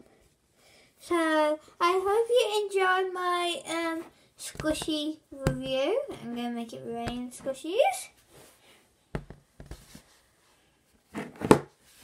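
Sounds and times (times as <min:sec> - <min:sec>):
foam toys thudding on table: 0:09.1 - 0:09.8, 0:11.2 - 0:11.7.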